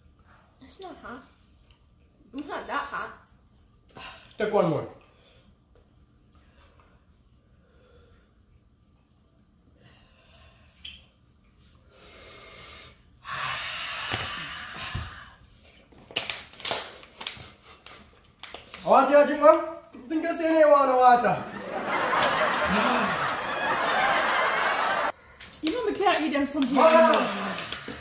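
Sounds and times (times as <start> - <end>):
person breathing hard through mouth: 11.9 - 15.4.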